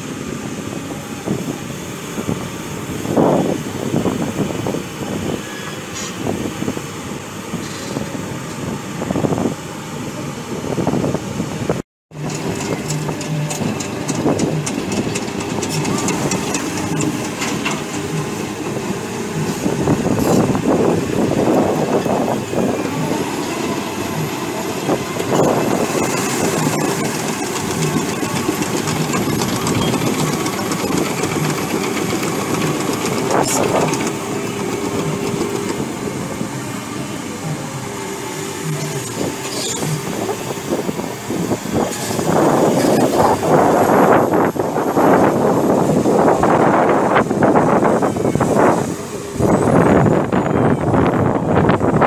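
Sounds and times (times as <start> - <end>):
excavator diesel engine running: 0.0 - 52.0
track chains clanking: 12.1 - 36.7.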